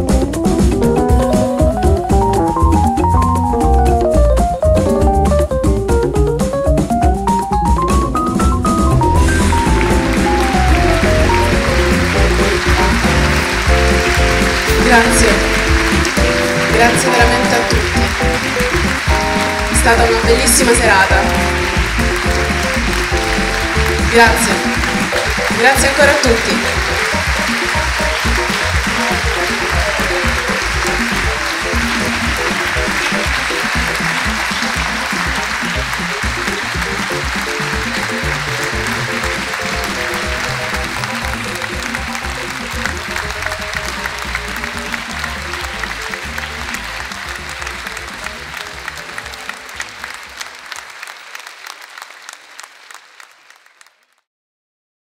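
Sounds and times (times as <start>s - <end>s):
music playing: 0.0s - 50.8s
audience applauding: 0.0s - 54.3s.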